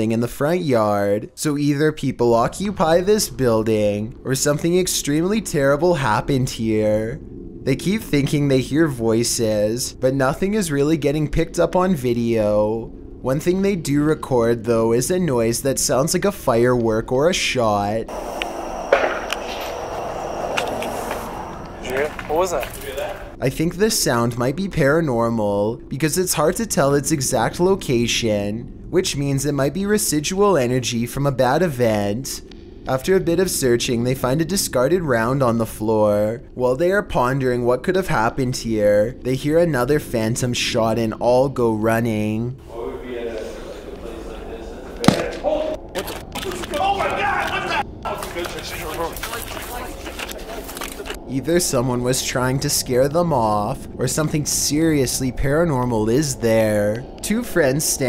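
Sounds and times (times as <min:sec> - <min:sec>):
sharp bang: 0:18.1 - 0:21.1
men shouting: 0:18.1 - 0:23.4, 0:46.4 - 0:47.8
sharp bang with echo: 0:18.4 - 0:19.9
faint clicks: 0:18.4 - 0:22.8.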